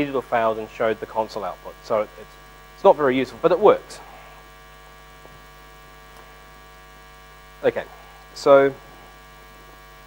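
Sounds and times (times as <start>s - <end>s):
electrical mains hum: 0.0s - 10.0s
person speaking: 7.6s - 9.0s.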